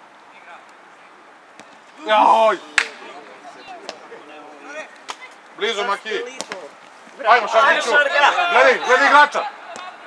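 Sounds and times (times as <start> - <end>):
steady background hiss: 0.0 - 10.0
distant shouts of players: 7.3 - 10.0.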